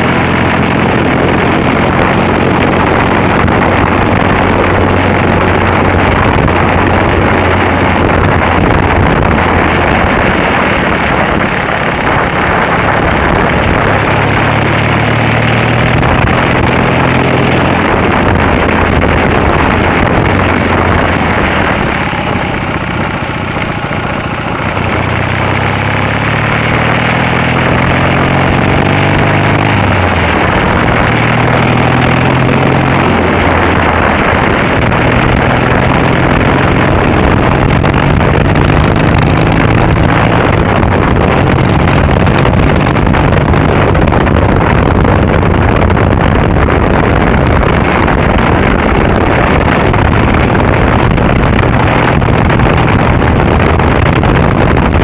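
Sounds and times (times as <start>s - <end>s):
motorcycle engine running: 0.0s - 55.0s
wind and road noise: 0.0s - 55.0s.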